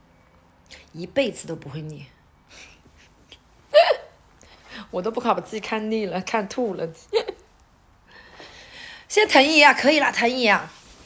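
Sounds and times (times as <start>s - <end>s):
woman speaking: 0.8s - 2.2s, 4.8s - 7.4s, 9.1s - 10.8s
woman hiccuping: 3.7s - 4.2s.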